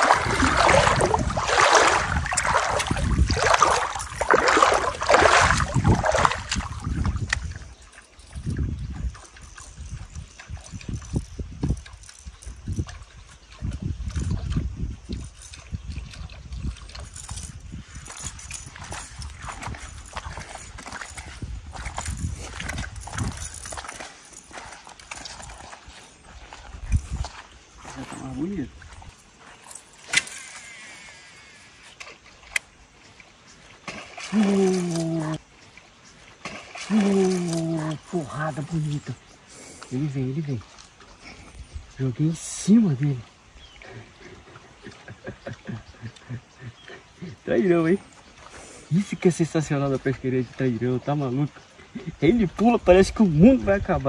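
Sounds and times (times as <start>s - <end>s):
wind buffeting microphone: 0.0s - 29.2s
sharp click: 30.0s - 30.8s.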